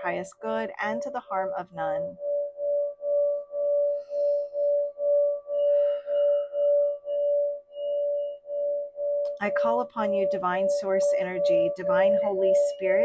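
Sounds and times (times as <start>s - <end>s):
singing bowl ringing: 1.9s - 13.0s.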